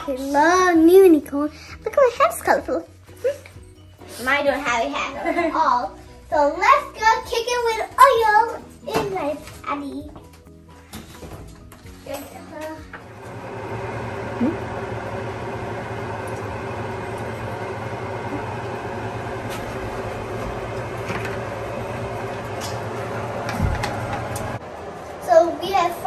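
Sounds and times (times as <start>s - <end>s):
exhaust fan humming: 12.8s - 26.0s.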